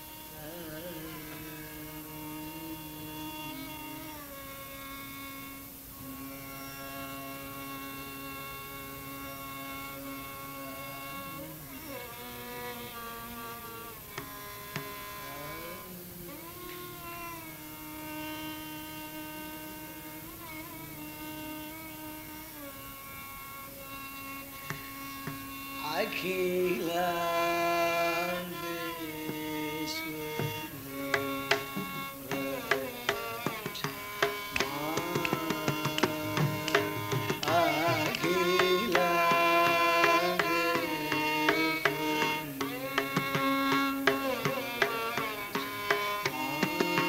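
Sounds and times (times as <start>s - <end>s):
violin playing long gliding notes: 0.0s - 47.0s.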